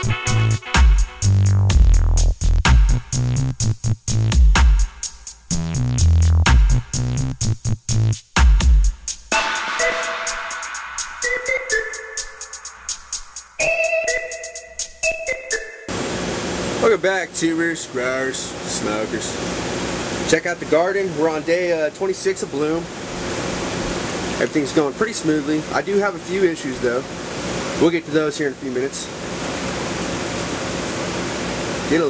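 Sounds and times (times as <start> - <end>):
music with percussive hits: 0.0 - 15.9
ventilation fans rushing air: 15.9 - 32.0.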